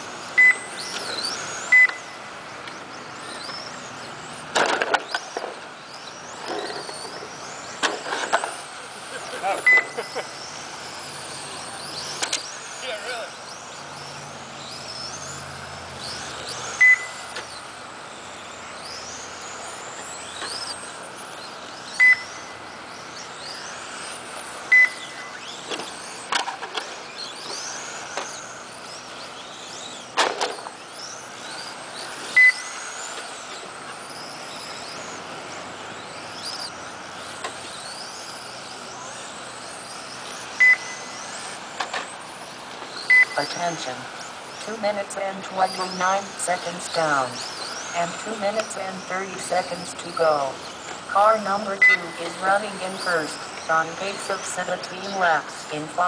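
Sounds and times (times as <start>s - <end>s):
rc car motors whining: 0.0s - 56.0s
short electronic beep: 0.4s - 0.7s, 1.7s - 2.2s, 9.7s - 10.0s, 16.8s - 17.2s, 22.0s - 22.3s, 24.7s - 25.2s, 32.4s - 32.7s, 40.6s - 41.0s, 43.1s - 43.4s, 51.8s - 52.2s.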